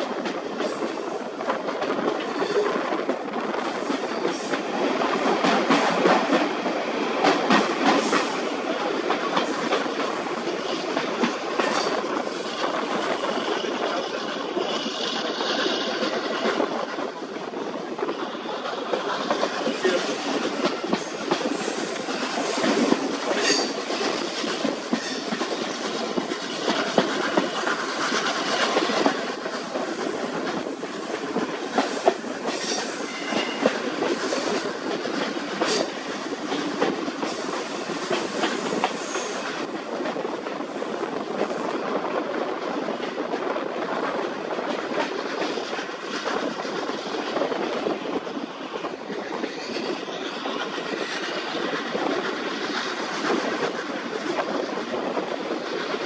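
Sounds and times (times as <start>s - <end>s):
railway carriage rumbling: 0.0s - 56.0s.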